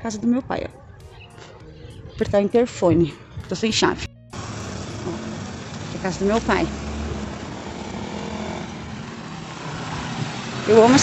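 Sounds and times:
outdoor street noise: 0:00.0 - 0:11.0
motor engine running: 0:04.3 - 0:11.0.

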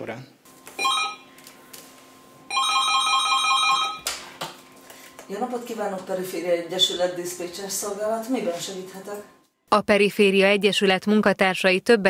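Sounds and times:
telephone ringing with warbling trill: 0:00.8 - 0:01.3, 0:02.5 - 0:04.0.

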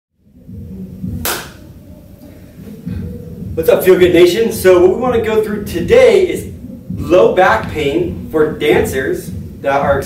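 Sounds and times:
sharp hand clap: 0:01.2 - 0:01.6.

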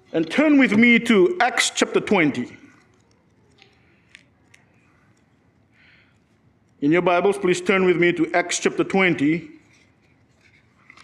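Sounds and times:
book pages rustling: 0:09.6 - 0:11.0.

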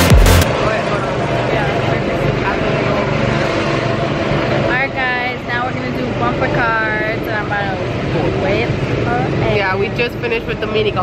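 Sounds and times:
go-kart engines running: 0:00.0 - 0:11.0.

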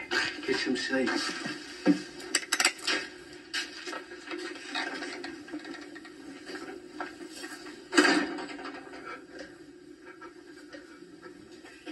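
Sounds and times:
film soundtrack through tv speakers: 0:00.0 - 0:11.9
steady low hum: 0:00.0 - 0:11.9.

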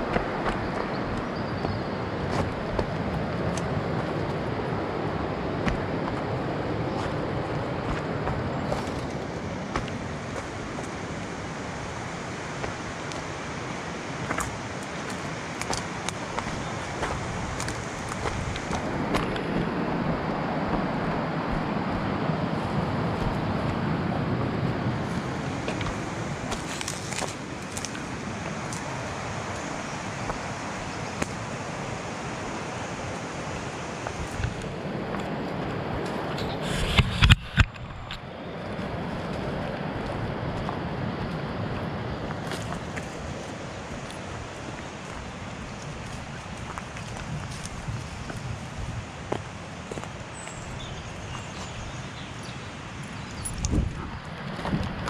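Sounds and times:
footsteps crunching on dry leaves: 0:00.0 - 0:37.2, 0:38.6 - 0:53.0
steady rushing noise: 0:00.0 - 0:55.0
twigs snapping: 0:14.2 - 0:19.8, 0:25.6 - 0:31.5.

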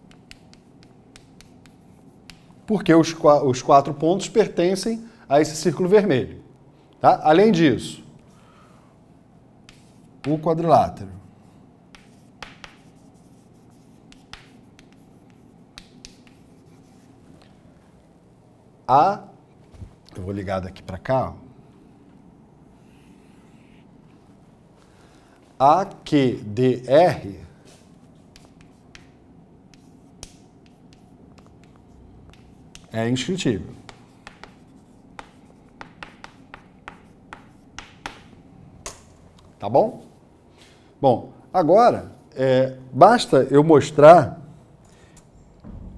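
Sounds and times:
chalk tapping and scraping on board: 0:00.0 - 0:02.9, 0:09.6 - 0:11.3, 0:11.9 - 0:17.5, 0:27.7 - 0:33.0, 0:33.6 - 0:39.0.

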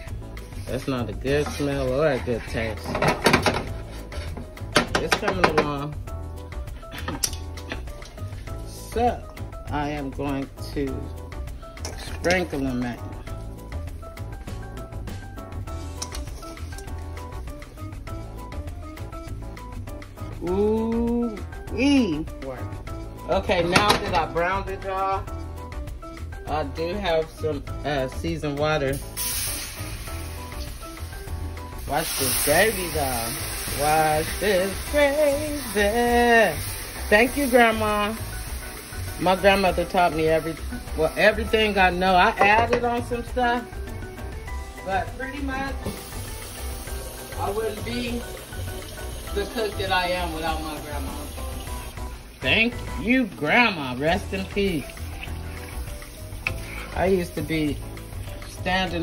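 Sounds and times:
water sizzling in hot skillet: 0:00.0 - 0:06.6, 0:07.2 - 0:59.0
background music: 0:00.0 - 0:59.0
wooden spoon scraping a skillet: 0:01.3 - 0:04.6, 0:55.2 - 0:57.6
water pouring: 0:46.9 - 0:58.8.

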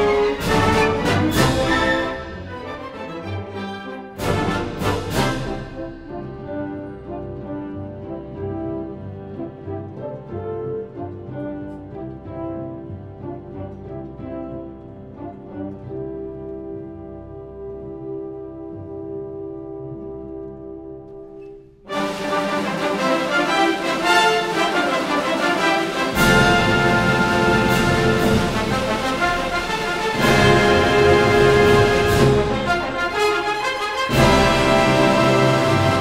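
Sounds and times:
symphony orchestra playing: 0:00.0 - 0:36.0.

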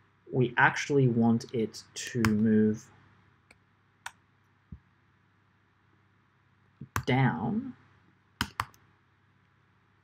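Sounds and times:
computer keyboard keystrokes: 0:08.4 - 0:08.8.

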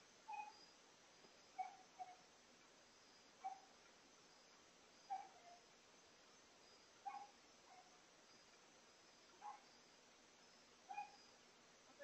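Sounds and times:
animal calling: 0:00.3 - 0:00.6.

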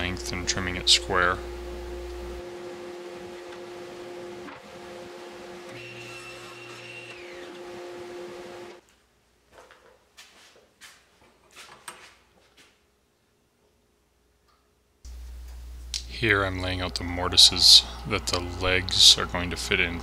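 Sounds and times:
workshop machinery hum and hiss: 0:00.0 - 0:08.8, 0:15.1 - 0:20.0.

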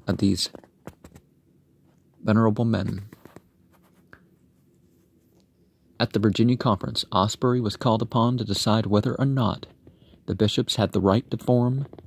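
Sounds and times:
light scratching: 0:02.7 - 0:05.5.

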